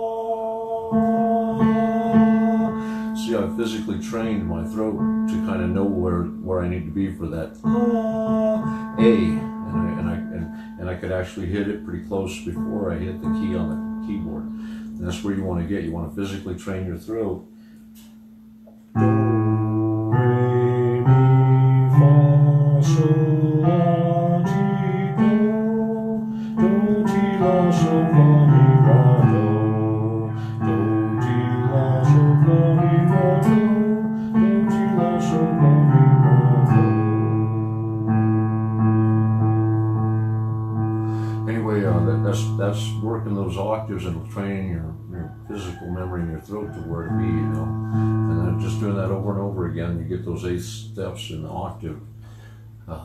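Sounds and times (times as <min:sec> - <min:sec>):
man singing: 0:00.0 - 0:15.7, 0:19.0 - 0:38.7, 0:41.4 - 0:51.9
electronic keyboard chords: 0:00.0 - 0:53.0.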